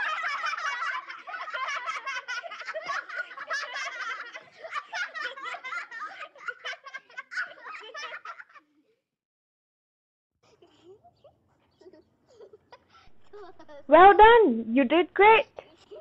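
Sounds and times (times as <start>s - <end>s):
children laughing and giggling: 0.0s - 9.0s, 10.4s - 14.0s, 15.5s - 16.0s.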